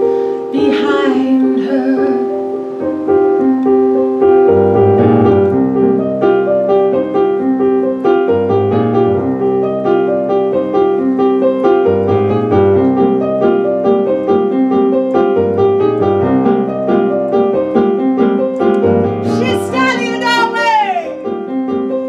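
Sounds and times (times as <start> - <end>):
piano chords: 0.0 - 22.0.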